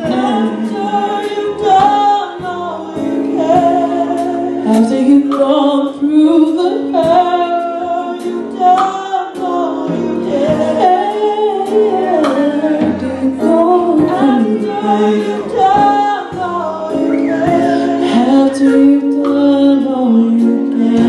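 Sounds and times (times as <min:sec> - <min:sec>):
instrumental accompaniment: 0:00.0 - 0:21.0
woman singing gospel song: 0:00.0 - 0:21.0.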